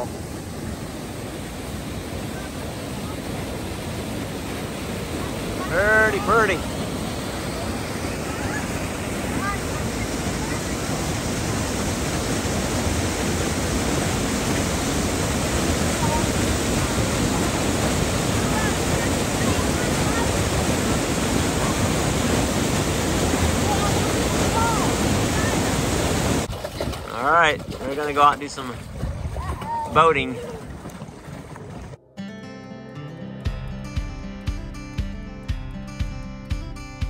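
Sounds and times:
waterfall rushing: 0.0 - 26.5.

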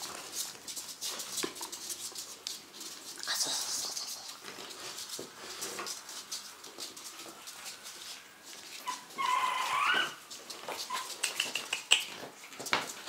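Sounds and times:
paws clicking on tile: 0.0 - 13.0
puppy whining: 8.6 - 12.6
puppy high squeaks: 8.7 - 12.2
puppies whimpering: 8.8 - 11.3.

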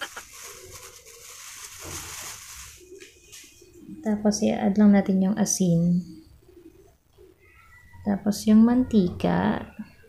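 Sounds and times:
flour pouring into a bowl: 0.0 - 2.9
plastic bag rustling: 0.0 - 3.7.

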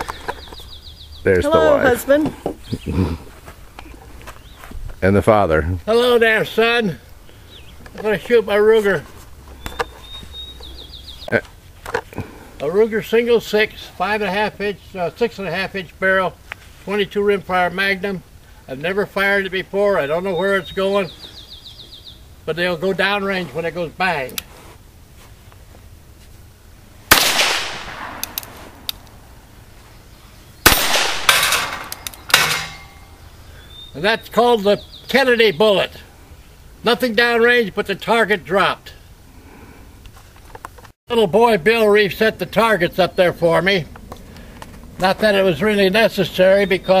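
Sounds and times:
bird whistling: 9.6 - 11.3, 33.0 - 35.1
revolver shots: 27.1 - 29.0, 30.6 - 33.0.

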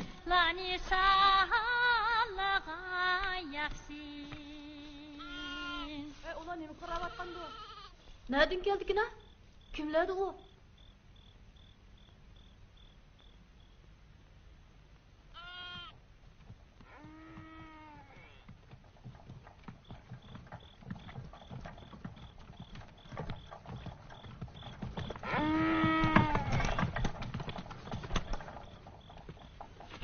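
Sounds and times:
crickets chirping: 0.0 - 30.0
sheep bleating: 5.2 - 5.9, 6.8 - 8.0, 15.3 - 16.0
short knocks clattering: 17.4 - 30.0.

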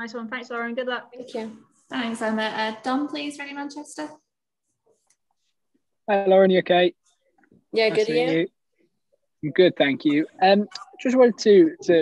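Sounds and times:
person speaking: 6.1 - 8.6, 9.2 - 12.0.

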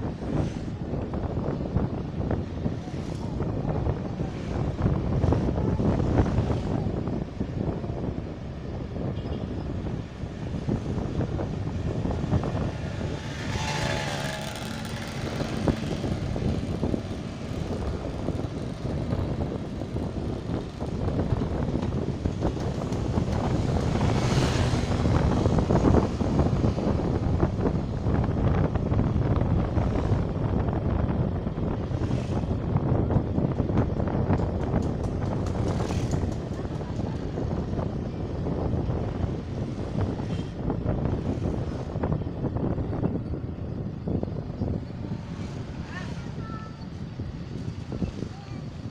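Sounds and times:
road noise: 0.0 - 48.9
wind buffeting microphone: 0.0 - 48.9
motorcycle engine: 10.7 - 27.2.

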